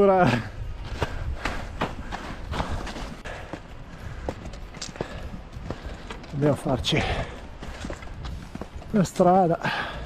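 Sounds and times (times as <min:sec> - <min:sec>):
wind rumble on microphone: 0:00.0 - 0:10.0
trekking poles tapping: 0:00.8 - 0:09.2
footsteps in ski boots crunching: 0:00.8 - 0:09.4.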